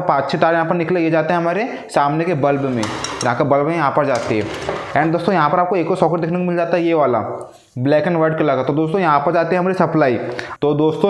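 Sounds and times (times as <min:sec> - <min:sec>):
man talking: 0:00.0 - 0:11.0.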